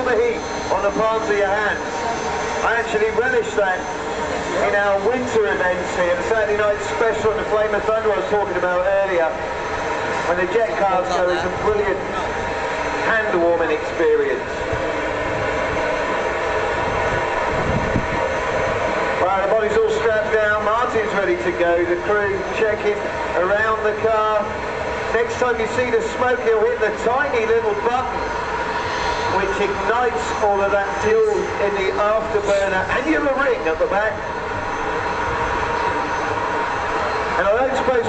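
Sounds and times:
turbine engine rushing and whining: 0:00.0 - 0:38.0.

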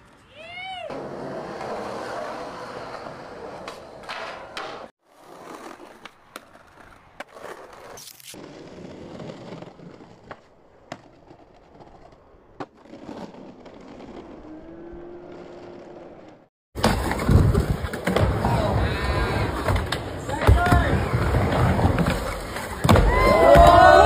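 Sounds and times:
skateboard wheels rolling on concrete: 0:00.0 - 0:24.0
people shouting: 0:22.8 - 0:24.0.

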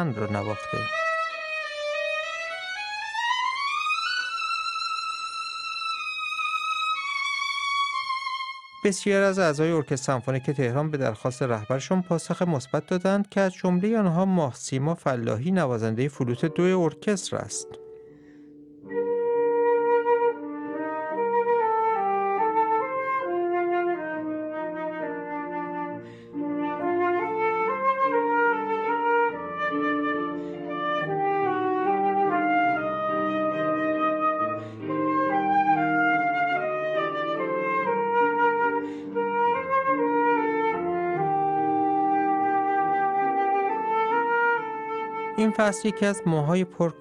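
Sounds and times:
flute melody: 0:00.0 - 0:47.0.

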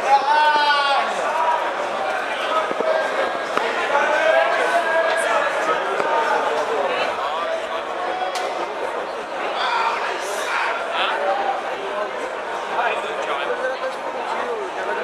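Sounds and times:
many voices talking: 0:00.0 - 0:15.0.

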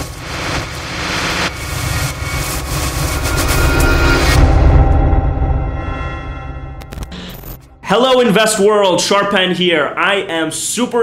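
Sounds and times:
whoosh riser: 0:00.0 - 0:07.8
low rumble: 0:00.0 - 0:07.9.

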